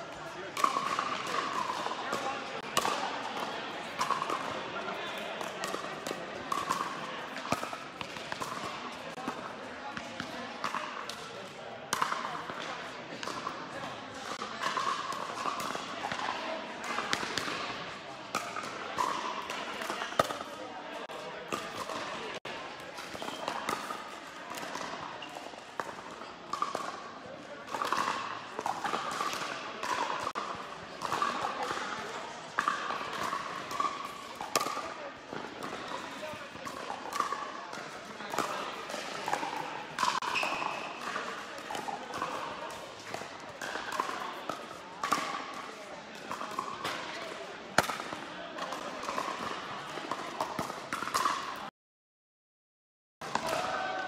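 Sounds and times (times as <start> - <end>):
players' voices: 0.0 - 51.7, 53.2 - 54.0.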